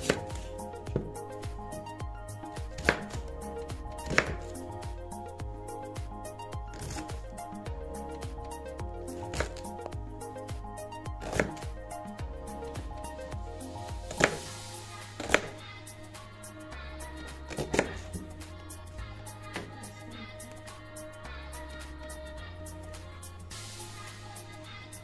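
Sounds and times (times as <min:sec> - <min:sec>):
knife slicing onion: 0:00.0 - 0:01.1, 0:02.8 - 0:03.3, 0:04.0 - 0:04.6, 0:06.7 - 0:07.2, 0:09.2 - 0:09.8, 0:11.2 - 0:11.6, 0:14.1 - 0:14.5, 0:15.2 - 0:15.6, 0:17.5 - 0:18.3
background music: 0:00.0 - 0:25.0.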